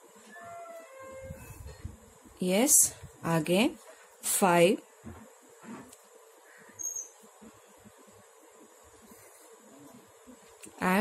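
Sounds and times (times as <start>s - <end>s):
faint steady hum and hiss: 0.0s - 11.0s.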